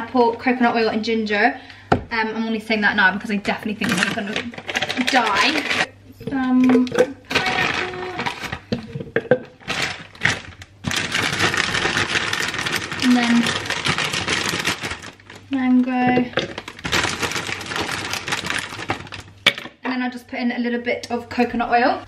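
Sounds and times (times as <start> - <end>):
frozen fruit rattling into blender cup: 3.8 - 5.9, 6.6 - 15.6, 16.2 - 19.7
plastic bag crinkling: 3.8 - 5.9, 7.3 - 19.7.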